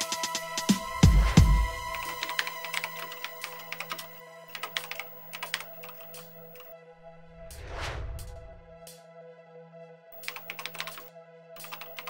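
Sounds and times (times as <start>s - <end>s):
held chord background music: 0.0s - 7.4s, 8.5s - 12.0s
keyboard typing clicks: 1.9s - 6.7s, 10.2s - 12.0s.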